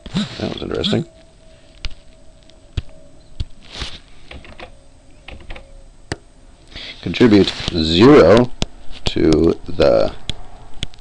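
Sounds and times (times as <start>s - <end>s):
keyboard keys clicking: 4.3s - 4.7s, 5.3s - 5.7s.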